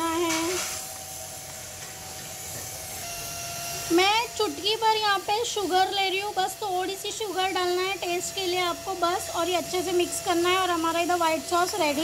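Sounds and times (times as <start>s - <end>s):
patties sizzling in oil: 0.0s - 12.0s.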